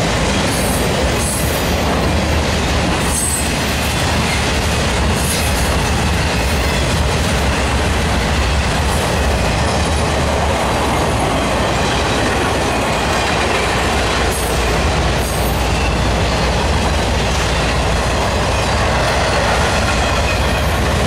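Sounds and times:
freight train wheels on rail: 0.0 - 21.0.

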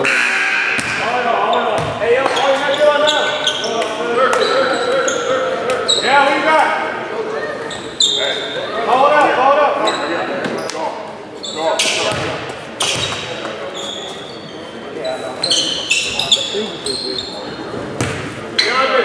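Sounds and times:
sneaker squeaks: 0.0 - 6.5, 7.5 - 8.8, 9.8 - 10.8, 11.4 - 18.9
indistinct voices in echoing hall: 0.0 - 19.0
basketball bouncing on hardwood: 1.8 - 2.4, 18.0 - 18.3.

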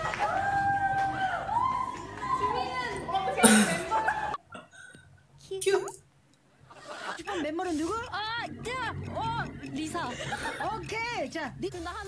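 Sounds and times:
high-pitched women's voices gliding: 7.2 - 12.0.

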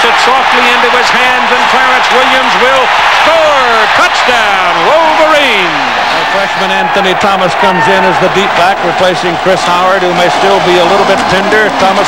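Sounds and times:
man speaking excitedly: 0.0 - 12.0
stadium crowd noise: 0.0 - 12.0.

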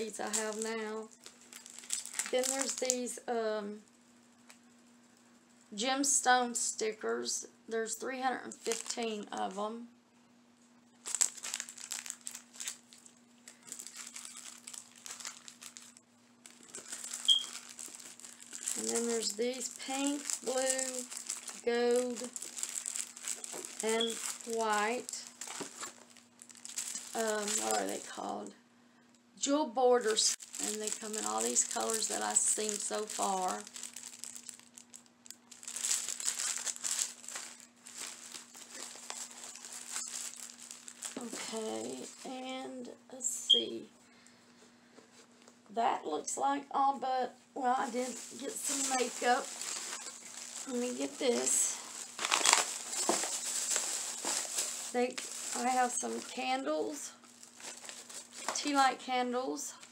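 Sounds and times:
plastic packaging crinkling: 0.0 - 3.2, 8.5 - 9.3, 10.9 - 28.2, 30.0 - 42.5, 47.8 - 59.0
faint steady hum: 0.0 - 59.9.

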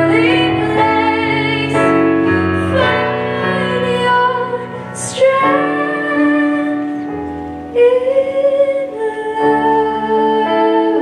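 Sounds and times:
instrumental backing: 0.0 - 11.0.

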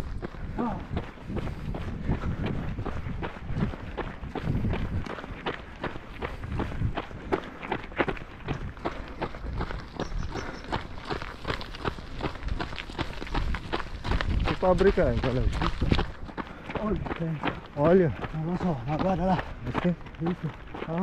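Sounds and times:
running footsteps on gravel: 0.0 - 21.0.

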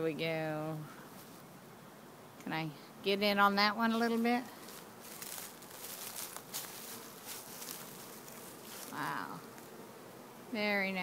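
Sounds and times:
bee swarm buzzing: 0.0 - 11.0.

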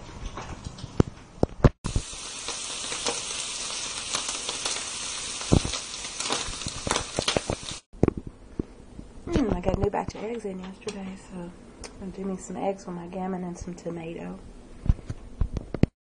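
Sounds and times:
meat sizzling in a frying pan: 1.9 - 7.9.

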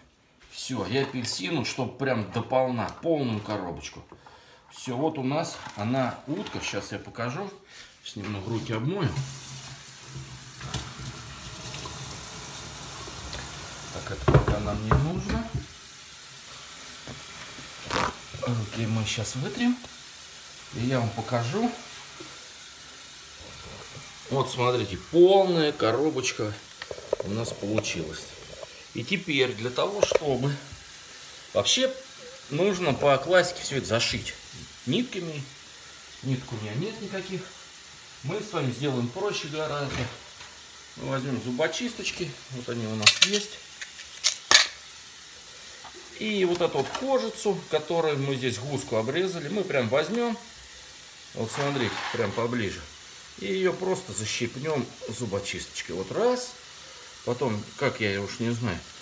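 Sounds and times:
low hiss of room noise: 0.0 - 59.0
plastic container knocking on wood: 14.2 - 15.7.

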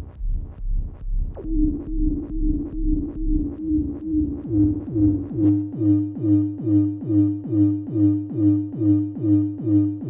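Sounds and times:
deep electronic pulse: 0.0 - 10.0
steady ringing tone: 1.4 - 10.0.

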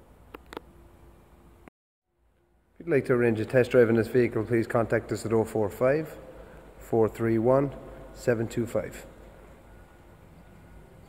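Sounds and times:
background hum and hiss: 2.3 - 11.0.

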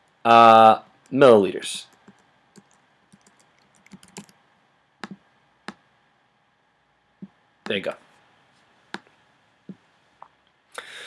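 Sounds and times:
computer keyboard typing: 1.9 - 4.4.

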